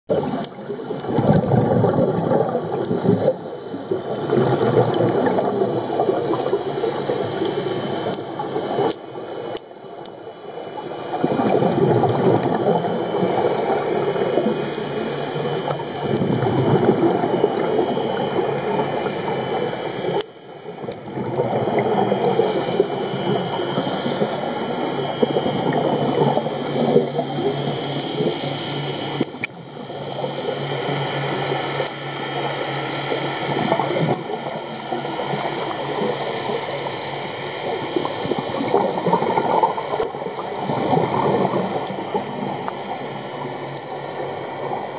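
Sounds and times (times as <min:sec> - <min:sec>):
underwater bubbles gurgling: 0:00.1 - 0:44.9.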